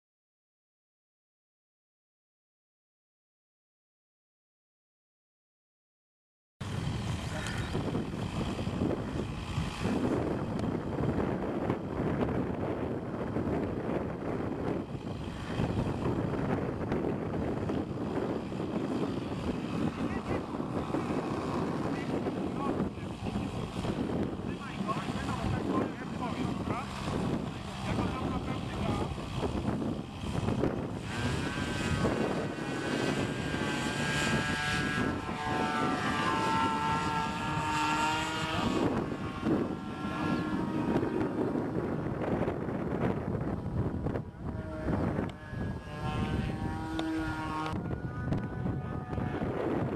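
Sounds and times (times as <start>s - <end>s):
model airplane engine whine: 6.6s - 49.9s.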